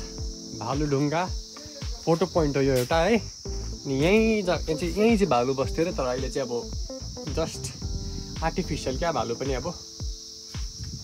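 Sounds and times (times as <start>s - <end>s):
background music: 0.0s - 11.0s
insect chorus: 0.0s - 11.0s.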